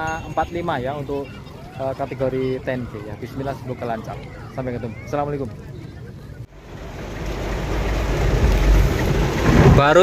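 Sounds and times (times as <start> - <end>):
low rumble: 6.5 - 10.0
heavy rain on a car: 6.6 - 10.0.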